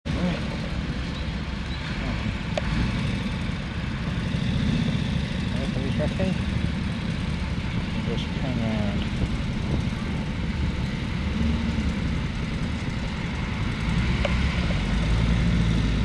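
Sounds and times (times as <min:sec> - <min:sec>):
motorcycle engine: 0:00.0 - 0:16.0
military vehicle engines running: 0:00.1 - 0:16.0.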